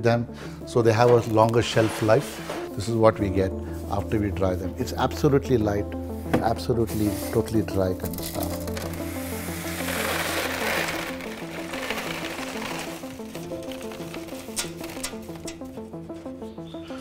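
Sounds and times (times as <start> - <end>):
background music: 0.0 - 17.0
dry larvae pouring into crate: 6.9 - 15.4.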